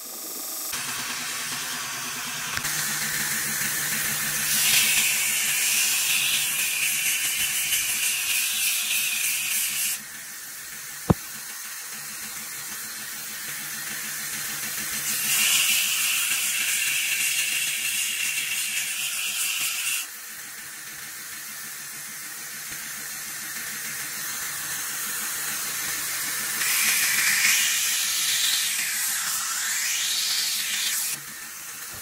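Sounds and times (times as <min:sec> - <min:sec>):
belt grinder running: 0:00.0 - 0:32.0
blade grinding hiss: 0:00.9 - 0:10.7, 0:12.3 - 0:20.2, 0:23.6 - 0:32.0.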